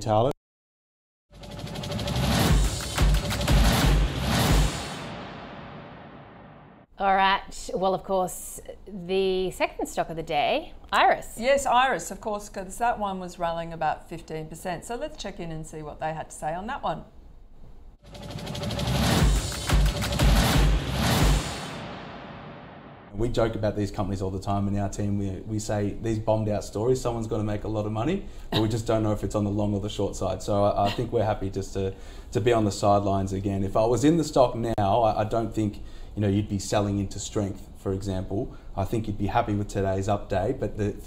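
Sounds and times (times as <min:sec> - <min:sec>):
fast pulsing music sting: 0:01.4 - 0:06.9, 0:18.0 - 0:23.2
heavy low hits: 0:01.4 - 0:06.9, 0:18.1 - 0:23.2
rising music swell: 0:18.0 - 0:23.2.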